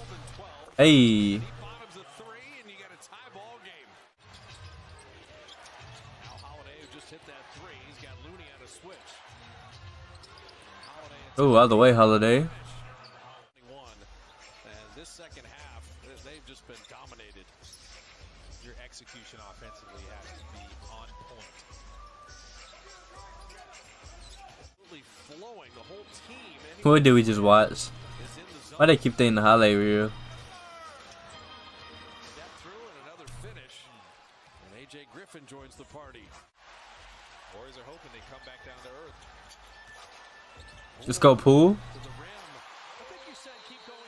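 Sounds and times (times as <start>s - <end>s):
commentator talking: 0.0s - 1.8s, 11.4s - 12.9s, 26.8s - 30.4s, 33.3s - 33.6s, 41.0s - 42.2s
faint man's voice: 0.0s - 1.8s, 11.4s - 12.9s, 26.8s - 30.4s, 41.0s - 42.2s
arena crowd noise: 0.0s - 4.1s, 8.7s - 13.5s, 26.8s - 30.5s, 36.6s - 44.0s.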